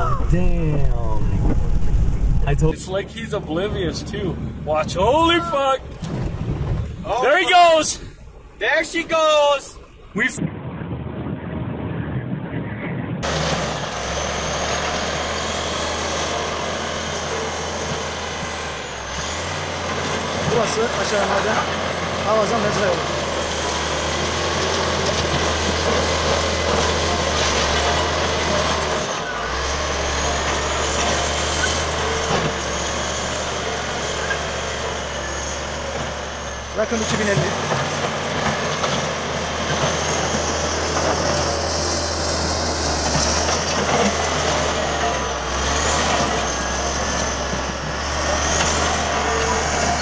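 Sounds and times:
bulldozer diesel engine running: 0.0 - 50.0.

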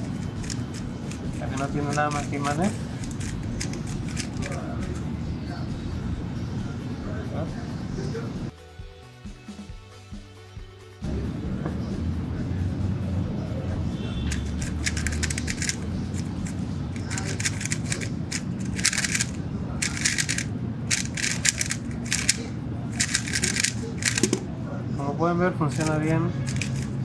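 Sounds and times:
speedcube clicking and rattling: 0.0 - 5.0, 14.3 - 24.4, 25.7 - 26.9
background music: 8.4 - 13.2.

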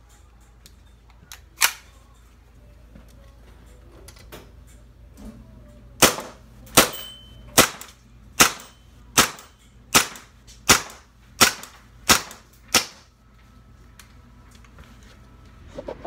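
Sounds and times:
airsoft pistol shots: 6.0 - 13.0.

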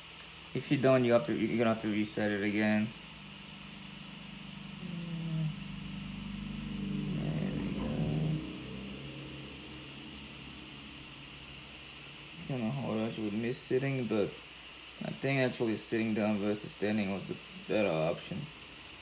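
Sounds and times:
faint room hum: 0.0 - 19.0
man humming low: 4.0 - 11.1
man talking: 12.4 - 14.4.

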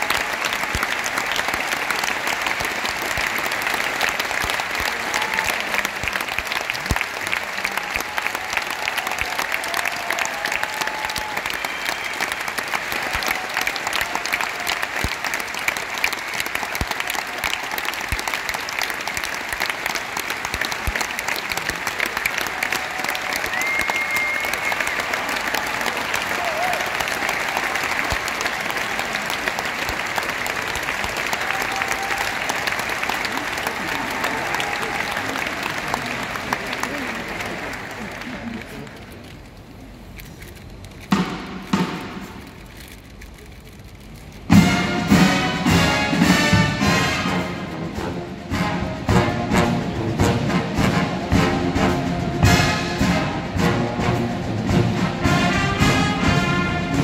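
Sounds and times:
audience applauding: 0.0 - 44.4.

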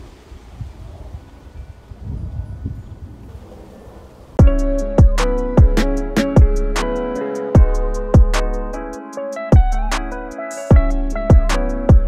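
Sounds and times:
gusting low wind rumble: 0.0 - 6.8.

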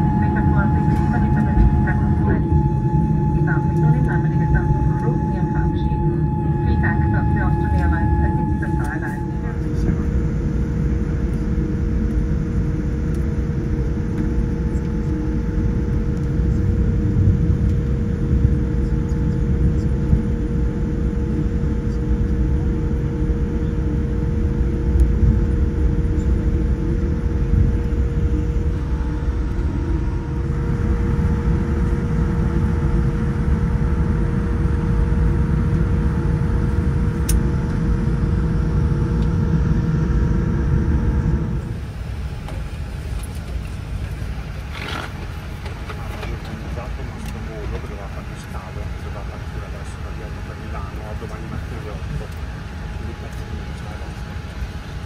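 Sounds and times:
airliner cabin rumble: 0.0 - 55.0
steady hum: 0.0 - 55.0.

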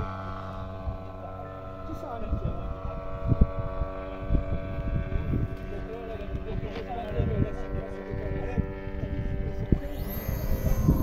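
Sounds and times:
model glider motor whining: 0.0 - 11.0
wind rumble on microphone: 0.0 - 11.0.

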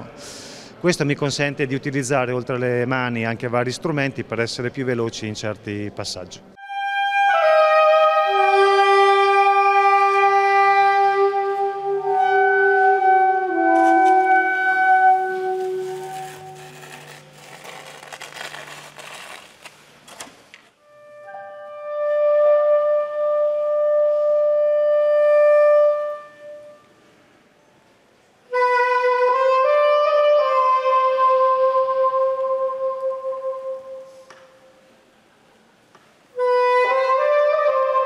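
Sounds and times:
soft airy hiss: 0.0 - 0.8
soprano saxophone long note: 6.6 - 17.8, 36.3 - 38.0
woodwind long note: 6.6 - 19.0, 20.8 - 27.0, 28.5 - 34.9, 36.3 - 38.0.

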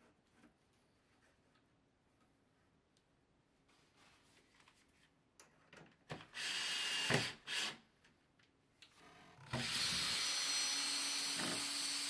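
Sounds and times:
cordless drill into timber: 6.3 - 7.8, 9.4 - 12.0.

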